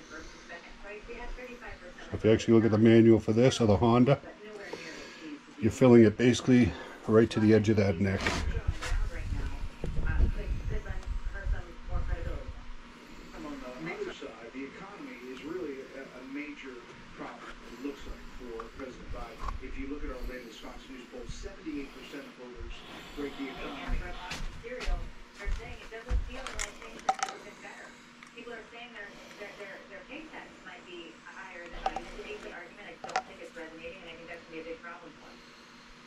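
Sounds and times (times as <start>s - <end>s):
news broadcast speech: 0.0s - 35.8s.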